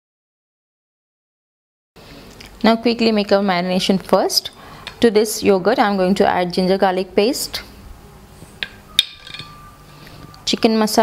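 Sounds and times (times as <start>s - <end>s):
spoon clinking on glass bowl: 8.6s - 9.8s.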